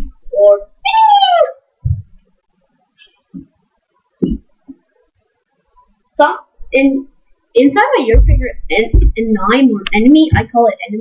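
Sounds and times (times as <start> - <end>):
boy yelling: 0.4 - 1.6
low thump: 1.8 - 2.2, 4.2 - 4.5, 8.1 - 9.3.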